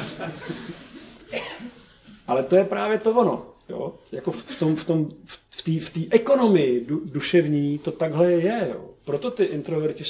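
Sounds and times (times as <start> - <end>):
person coughing: 1.3 - 1.9, 4.4 - 4.9.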